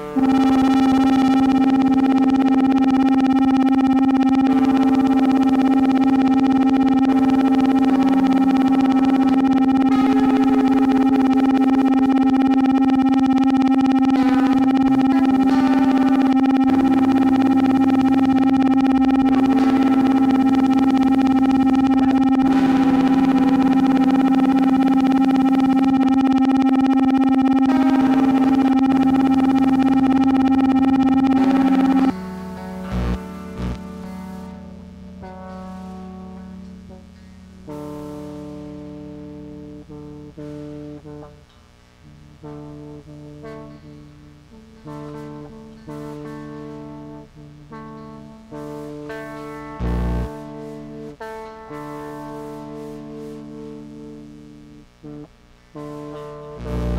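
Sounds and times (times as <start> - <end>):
electric guitar notes: 0.0 - 56.9
synthesizer guitar drone: 0.0 - 56.9.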